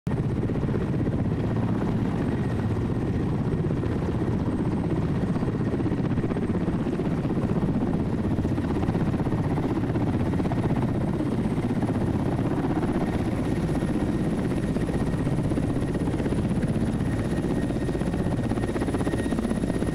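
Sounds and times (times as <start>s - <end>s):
helicopter rotor beating: 0.1s - 19.9s.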